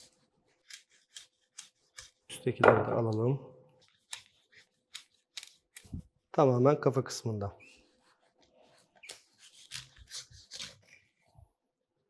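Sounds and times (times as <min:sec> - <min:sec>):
knife snipping fish fins: 0:00.0 - 0:02.3, 0:03.9 - 0:06.0.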